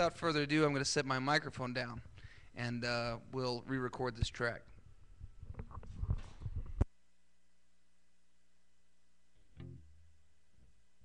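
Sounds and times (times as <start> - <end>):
bass guitar low note: 9.6 - 10.2.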